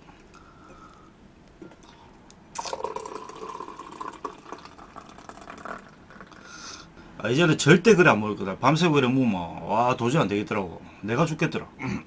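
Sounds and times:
beer gurgling into a glass: 2.6 - 6.5.

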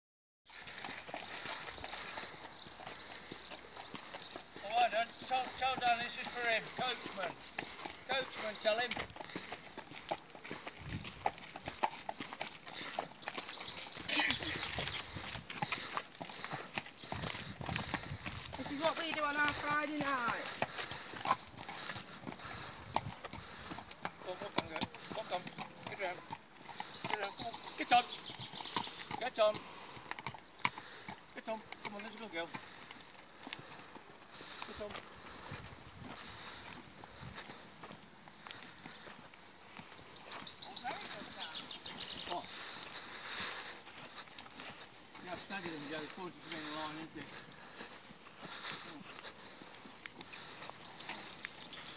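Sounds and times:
hooves clip-clopping on gravel: 0.5 - 51.9.

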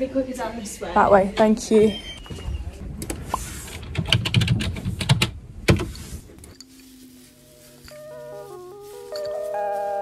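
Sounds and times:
sharp clicks and knocks: 3.0 - 6.6.

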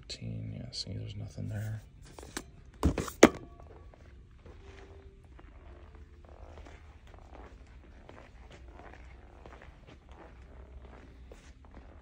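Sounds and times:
low room rumble: 3.4 - 12.0.

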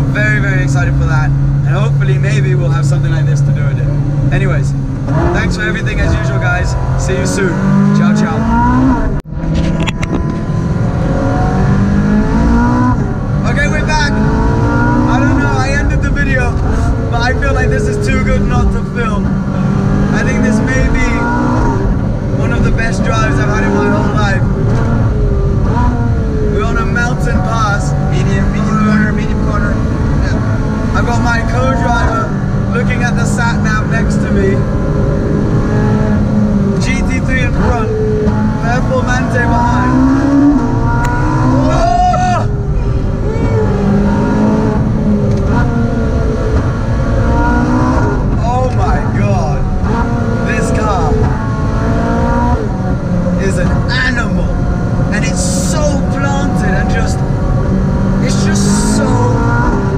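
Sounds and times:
people talking: 0.0 - 8.7, 13.4 - 14.2, 15.0 - 19.3, 20.1 - 21.4, 22.4 - 24.4, 26.5 - 30.4, 31.0 - 34.6, 36.8 - 37.9, 38.6 - 40.0, 41.5 - 43.8, 48.4 - 49.7, 50.4 - 51.2, 53.4 - 54.5, 55.1 - 57.2, 58.2 - 59.5
car engine from inside cabin: 0.0 - 59.9.

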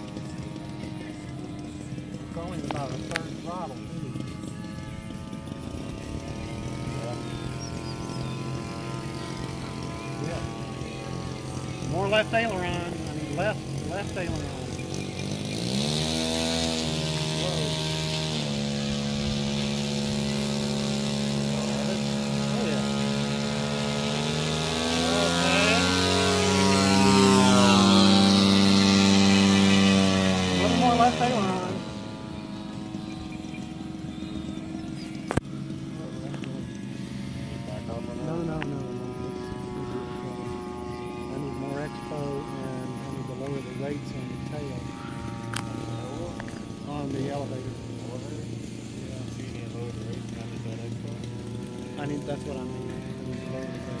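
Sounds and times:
model airplane engine droning: 0.0 - 54.0.

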